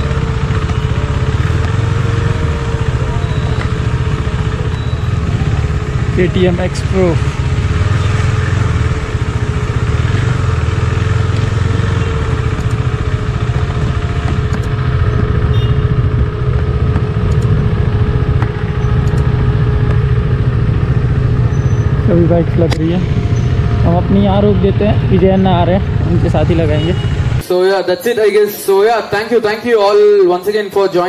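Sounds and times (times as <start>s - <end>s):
motorcycle engine running: 0.0s - 27.4s.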